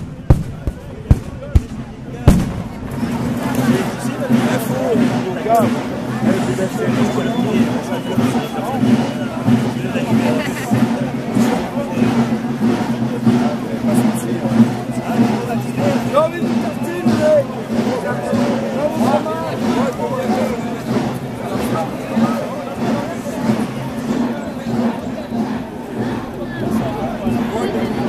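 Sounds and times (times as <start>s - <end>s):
crowd chatter: 0.0s - 28.0s
marching drums beating: 0.0s - 28.0s.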